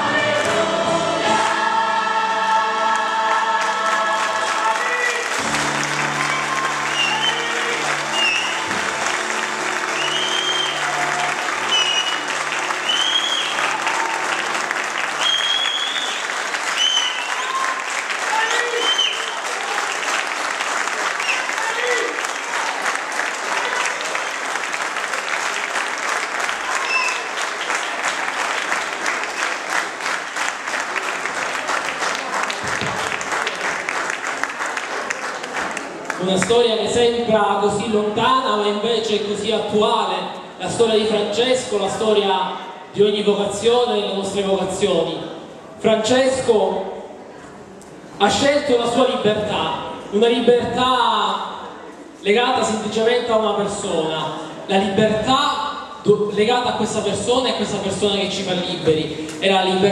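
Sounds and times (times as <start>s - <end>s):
audience applauding: 2.8s - 36.8s.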